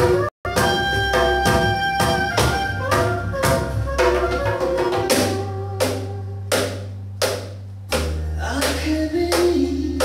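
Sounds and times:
cajon slaps: 0.0 - 9.7.

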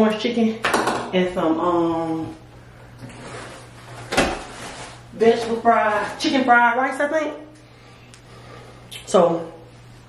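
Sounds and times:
faint background hiss and hum: 0.0 - 10.0.

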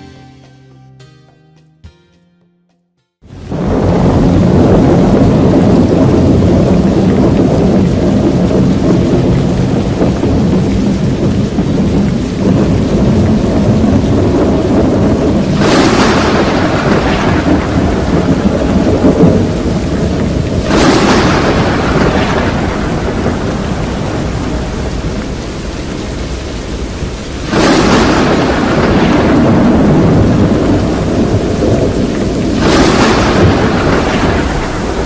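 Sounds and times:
rain hissing: 3.2 - 35.0
deep storm rumble: 3.3 - 35.0.

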